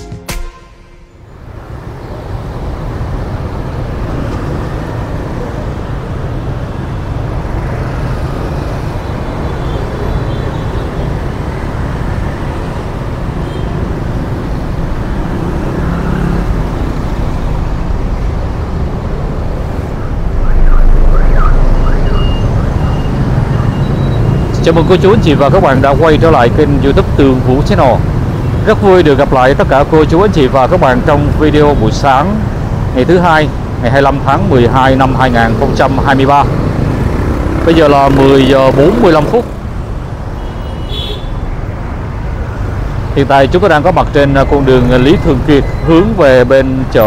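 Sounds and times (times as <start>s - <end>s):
cars and bus passing: 0.0s - 47.0s
low traffic rumble: 1.2s - 47.0s
motorbikes: 1.4s - 47.0s.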